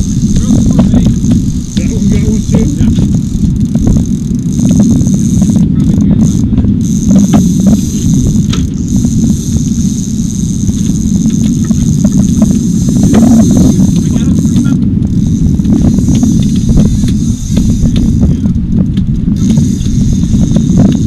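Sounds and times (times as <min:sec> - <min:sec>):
thin high whine: 0:00.0 - 0:18.6, 0:19.2 - 0:21.0
steady low rumble: 0:00.0 - 0:21.0
muffled voices: 0:00.4 - 0:03.1, 0:13.6 - 0:14.8.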